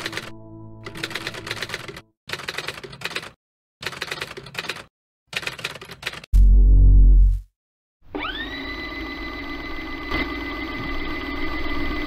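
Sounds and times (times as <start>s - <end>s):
typewriter key clicks: 0.9s - 6.3s
ambient synth drone: 8.8s - 12.0s.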